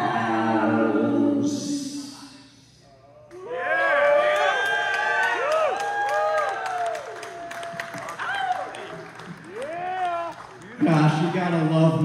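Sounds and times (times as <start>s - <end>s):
audience clapping and cheering: 3.3s - 11.5s
whoops: 3.4s - 10.4s.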